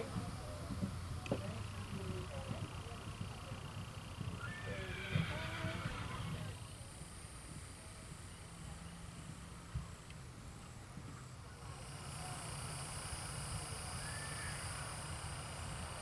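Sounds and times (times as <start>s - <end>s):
faint distant voices: 0.0s - 16.0s
low outdoor rumble: 0.0s - 16.0s.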